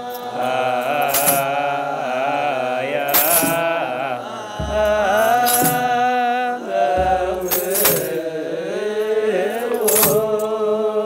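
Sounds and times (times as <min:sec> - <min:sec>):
clergy chanting together: 0:00.0 - 0:11.0.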